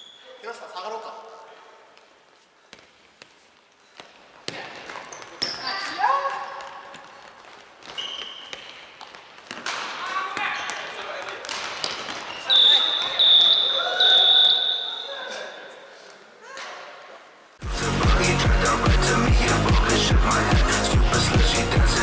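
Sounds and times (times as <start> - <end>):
shoes squeaking: 2.0 - 16.6
players calling out: 12.2 - 15.8.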